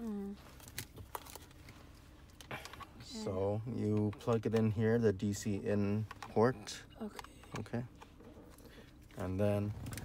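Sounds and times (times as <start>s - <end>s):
low steady car cabin hum: 0.0s - 10.0s
plastic cable clicks and rustles: 3.8s - 4.8s.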